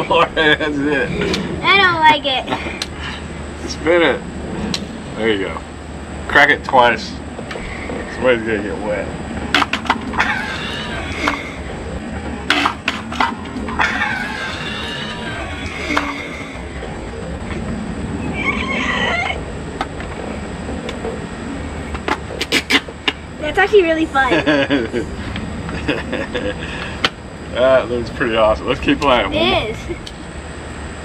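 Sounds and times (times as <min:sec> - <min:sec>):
people shrieking and laughing: 0:13.8 - 0:16.1.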